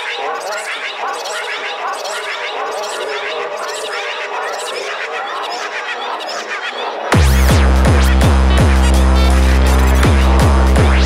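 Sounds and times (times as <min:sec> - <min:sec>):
fast chirping synth glides: 0:00.0 - 0:11.0.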